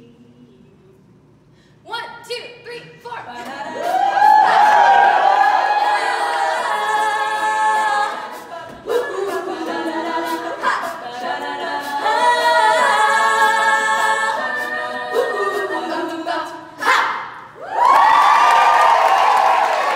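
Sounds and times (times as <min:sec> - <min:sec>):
women singing close harmony: 0:03.3 - 0:17.5.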